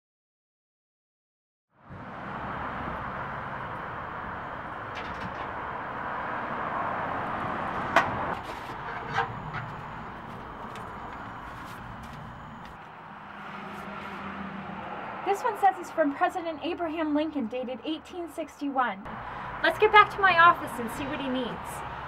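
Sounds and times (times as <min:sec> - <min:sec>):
car passing: 0:01.8 - 0:18.3, 0:19.1 - 0:22.0.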